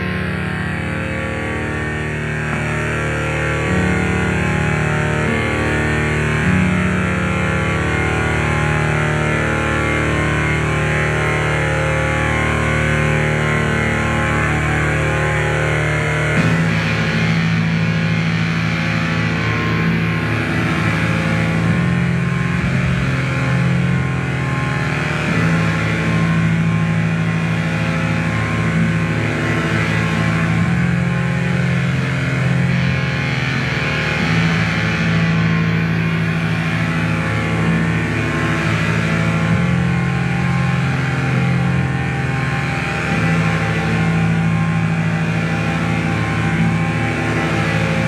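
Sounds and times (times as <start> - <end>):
low bass tone: 0.0 - 36.6
noisy drone tones: 0.0 - 48.0.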